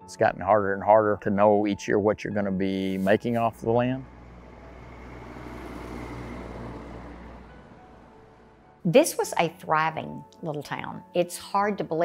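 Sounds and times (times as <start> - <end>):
trucks passing on highway: 2.6 - 9.6.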